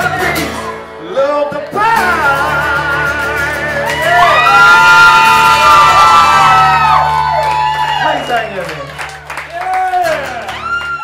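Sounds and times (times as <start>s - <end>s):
guitar: 0.0s - 11.0s
crowd shouting and whooping: 3.5s - 11.0s.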